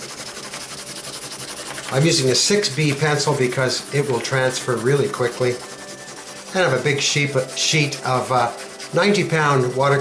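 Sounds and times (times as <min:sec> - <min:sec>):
pencil scribbling on paper: 0:00.0 - 0:10.0.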